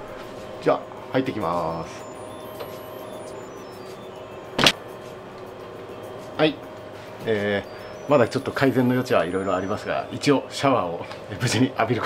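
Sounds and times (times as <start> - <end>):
light background music: 0.0 - 12.0
high chime-like notes: 1.4 - 4.8.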